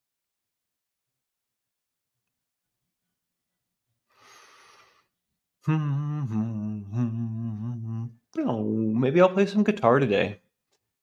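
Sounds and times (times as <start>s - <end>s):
faint breath out: 4.1s - 5.2s.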